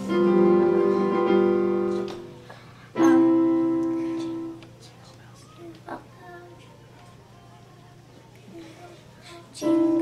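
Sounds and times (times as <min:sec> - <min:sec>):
piano chords: 0:00.0 - 0:04.6, 0:09.6 - 0:10.0.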